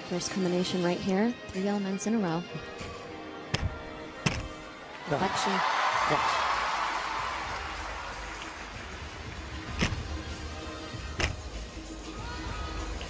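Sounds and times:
feet landing on balance beam: 3.5s - 4.6s
crowd cheering: 4.8s - 9.0s.

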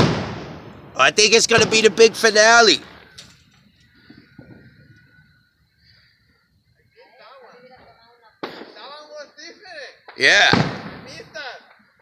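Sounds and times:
distant firework bang: 0.0s - 3.2s, 8.4s - 8.9s, 10.1s - 11.4s
people talking: 1.0s - 2.8s, 6.8s - 11.7s.

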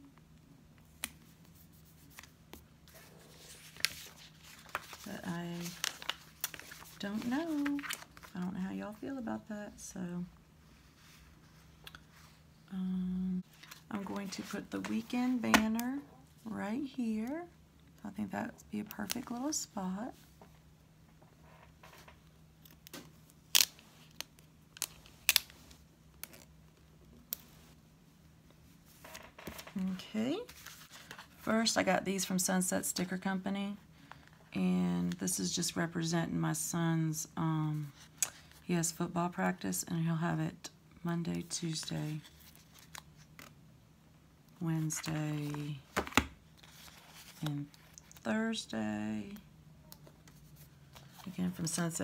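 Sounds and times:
handling paper sticker sheets: 1.0s - 8.6s, 44.8s - 48.2s.

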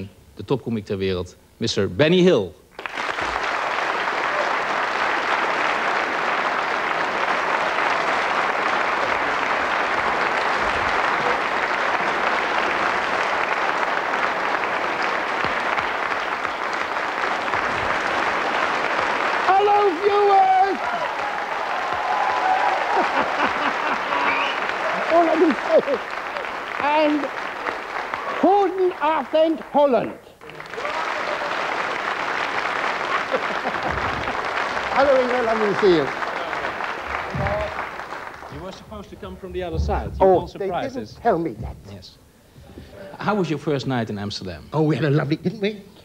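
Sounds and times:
studio audience applauding: 2.7s - 39.8s
men's voices: 38.4s - 45.5s.

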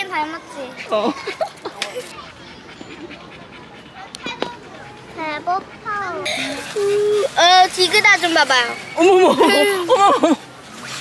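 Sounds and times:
dog panting quietly: 0.6s - 6.8s.

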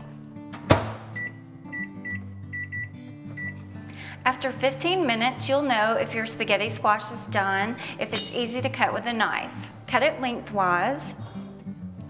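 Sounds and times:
background music: 0.0s - 12.0s
keypad beeps: 1.2s - 3.6s.

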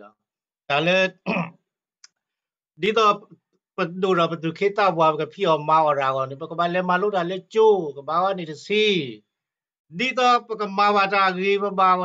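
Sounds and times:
man speaking: 0.0s - 1.5s, 2.8s - 9.3s, 9.9s - 12.0s.

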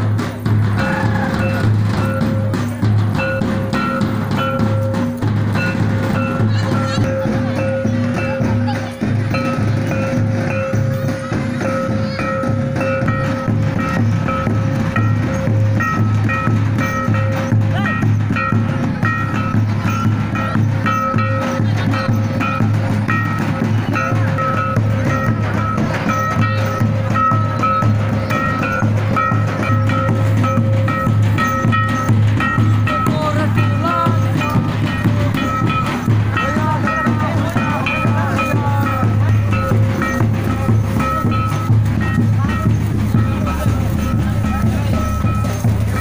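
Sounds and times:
crowd voices: 0.0s - 46.0s
drums beating dance rhythm: 0.0s - 46.0s
high melody of held notes: 0.0s - 46.0s.

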